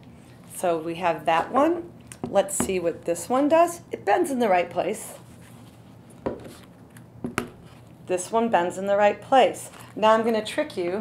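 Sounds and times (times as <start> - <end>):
shoes knocking on wooden table: 6.2 - 6.5, 7.2 - 7.6.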